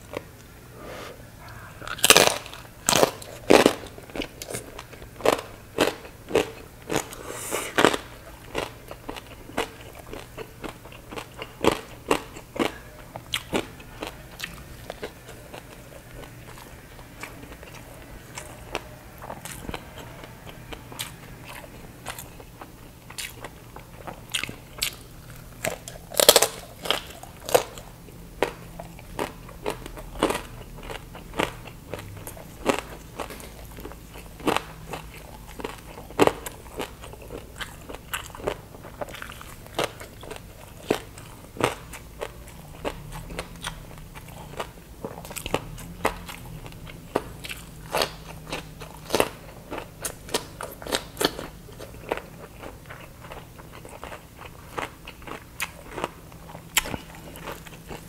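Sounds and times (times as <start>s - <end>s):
crunching crispy pork crackling: 1.5s - 58.0s.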